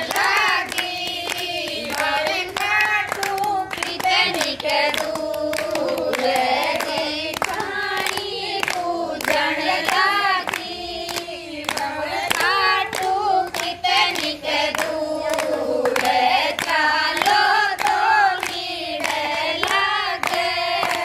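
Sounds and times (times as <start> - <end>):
hand-clapping: 0.0 - 21.0
women singing together: 0.0 - 21.0.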